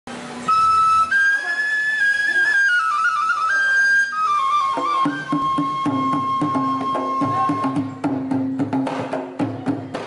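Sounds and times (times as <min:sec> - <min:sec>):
flute melody: 0:00.3 - 0:08.4.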